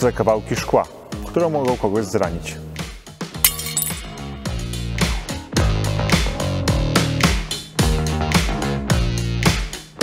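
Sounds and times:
boot clinking on glass: 3.5s - 4.1s.

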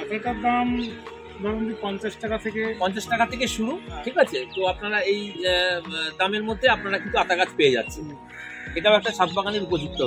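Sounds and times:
man talking: 0.0s - 8.2s, 8.8s - 10.0s
background music with beat: 0.0s - 10.0s
crow cawing: 6.7s - 9.6s.

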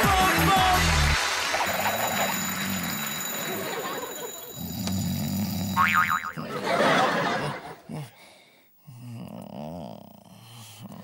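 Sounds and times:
person snoring: 4.6s - 6.6s, 7.2s - 11.0s.

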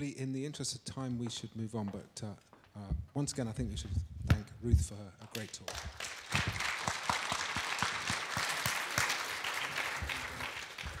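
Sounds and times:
audience applauding: 5.4s - 11.0s.

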